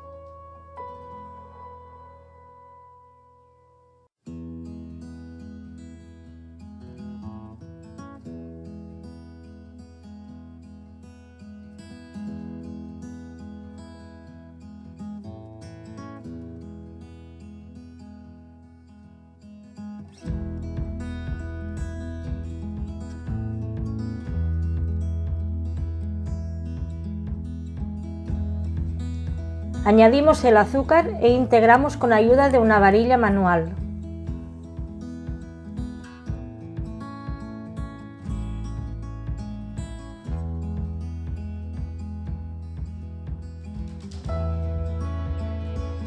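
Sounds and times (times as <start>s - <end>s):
acoustic guitar piece: 0.0s - 46.0s
heavy bass: 20.3s - 35.5s, 38.3s - 46.0s.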